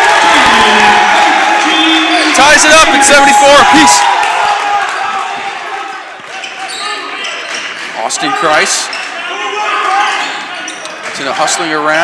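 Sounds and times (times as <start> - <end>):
voices in a gym: 0.0 - 12.0.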